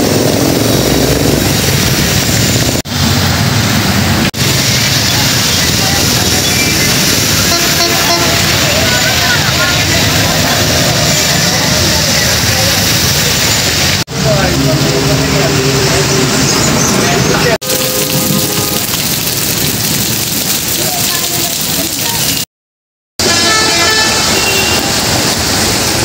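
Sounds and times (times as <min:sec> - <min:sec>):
heavy rain hissing on road: 0:00.0 - 0:16.4, 0:17.0 - 0:22.5, 0:23.2 - 0:26.0
vehicles running through water: 0:00.0 - 0:22.5, 0:23.2 - 0:26.0.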